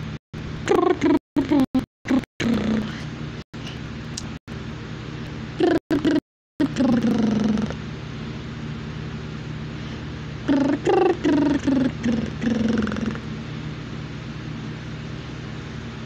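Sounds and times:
steady low hum: 0:00.0 - 0:16.0
person singing unaccompanied: 0:10.5 - 0:13.2.

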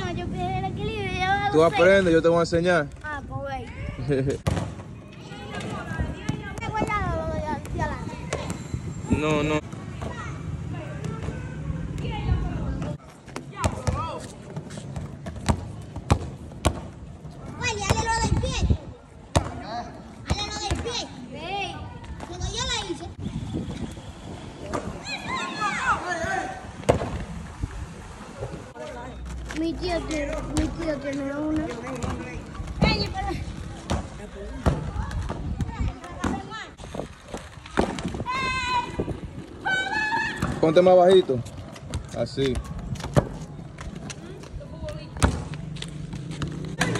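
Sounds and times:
skateboard wheels rolling on pavement: 0:21.3 - 0:46.9
skateboards clacking on ground: 0:41.6 - 0:46.9.

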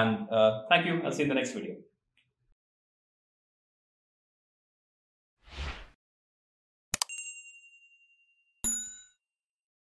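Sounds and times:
bright bell chime: 0:07.1 - 0:09.2
ringing ding: 0:07.1 - 0:09.2.

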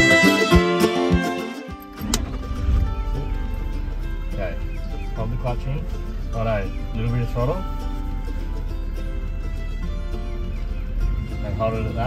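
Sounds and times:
folk music with fiddle and guitar: 0:00.0 - 0:12.0
car engine rumble: 0:01.7 - 0:12.0.

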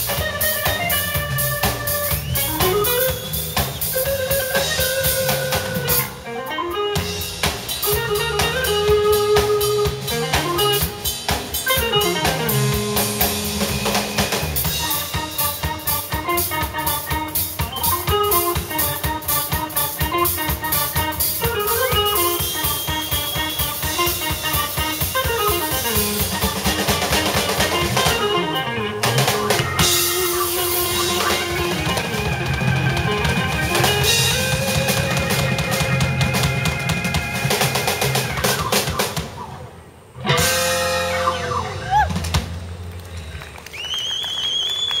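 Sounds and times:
live band instrumental jam: 0:00.0 - 0:45.0.

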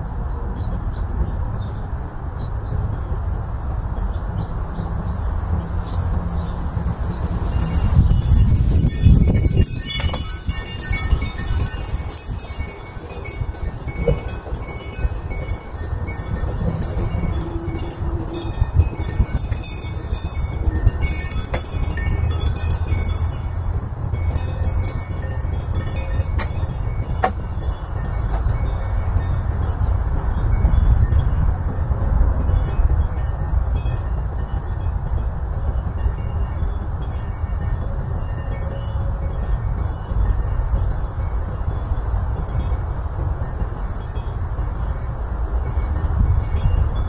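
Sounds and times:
wind buffeting microphone: 0:00.0 - 0:47.0
wind chimes ringing: 0:07.3 - 0:47.0.

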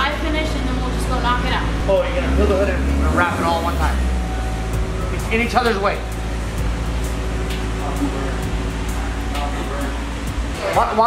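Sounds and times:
background music hum: 0:00.0 - 0:11.0.

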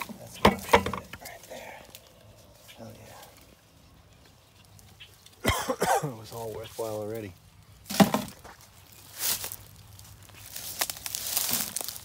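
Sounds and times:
man coughing: 0:05.4 - 0:06.2.

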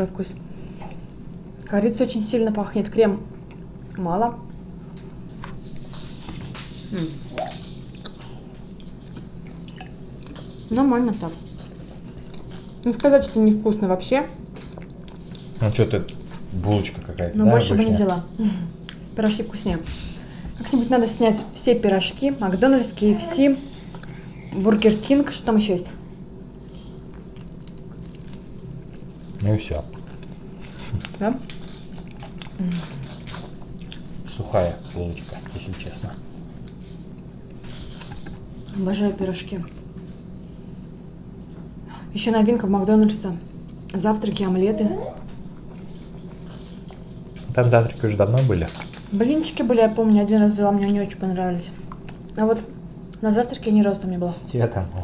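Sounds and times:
wet chewing: 0:29.8 - 0:34.2.

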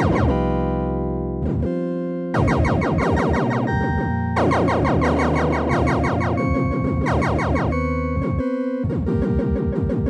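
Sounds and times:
sequenced synth music: 0:00.0 - 0:10.0.

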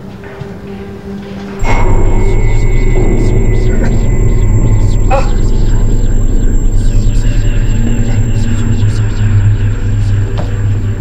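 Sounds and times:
cry-like sweep: 0:01.6 - 0:11.0
deep loud cinematic drone: 0:01.6 - 0:11.0
rapid pulsing: 0:01.6 - 0:11.0.

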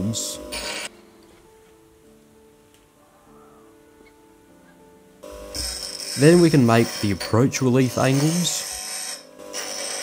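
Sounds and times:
soft background music: 0:00.0 - 0:10.0
bench grinder grinding steel: 0:00.4 - 0:00.9, 0:05.3 - 0:10.0.

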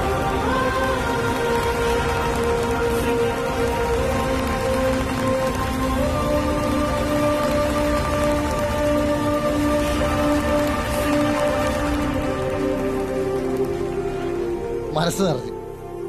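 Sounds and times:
audience applause: 0:00.0 - 0:13.1
music of long held chords: 0:00.0 - 0:16.0.

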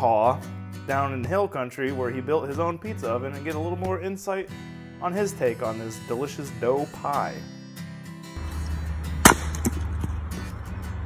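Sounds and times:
axe splitting log: 0:08.4 - 0:10.3.

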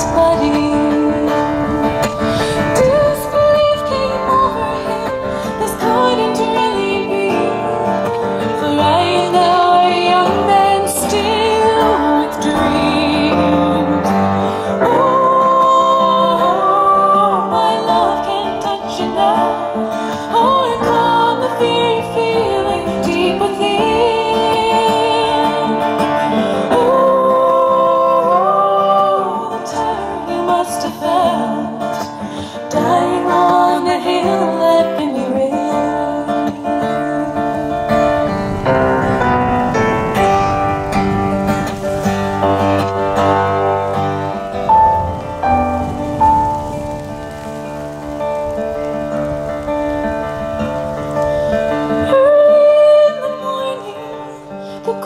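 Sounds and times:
woman singing wordless notes: 0:00.0 - 0:38.4, 0:51.7 - 0:55.0
acoustic guitar strumming: 0:00.0 - 0:55.0.

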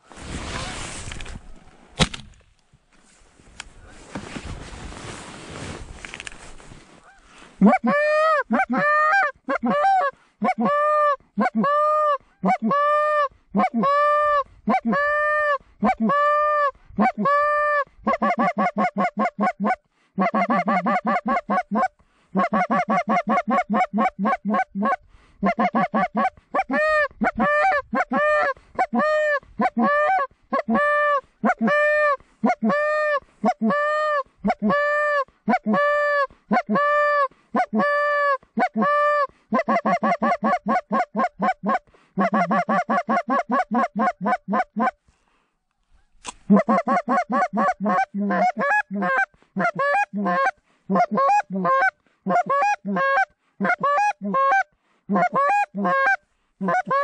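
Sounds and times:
goose call honking: 0:07.0 - 0:12.9, 0:38.6 - 0:45.0, 0:46.5 - 0:57.0
goose call clucking: 0:07.0 - 0:45.0, 0:46.5 - 0:57.0.

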